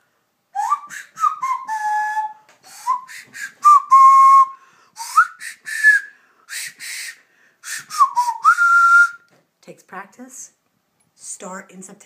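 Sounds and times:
nose flute whistling: 0.6 - 9.3
breathy air noise: 4.4 - 8.0.

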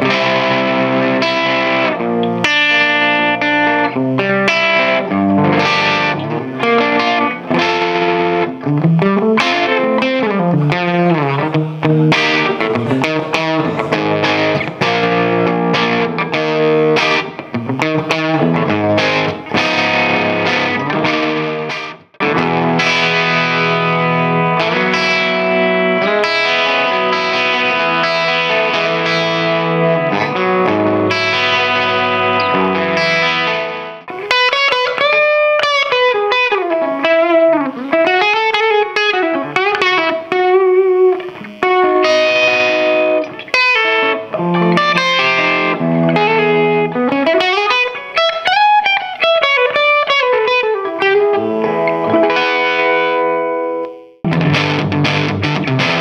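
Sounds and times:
electric guitar playing: 0.0 - 56.0.

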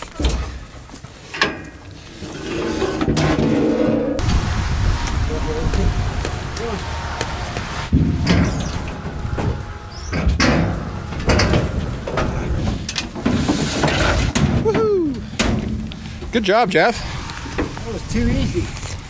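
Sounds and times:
metal gates banging: 0.0 - 18.5
loud metal clangs: 3.0 - 16.0
hooves on trailer floor: 5.7 - 19.0.

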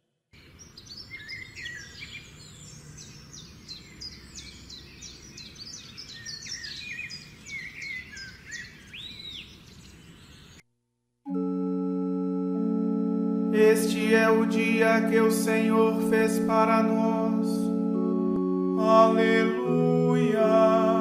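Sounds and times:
small birds chirping and singing: 0.4 - 10.6.

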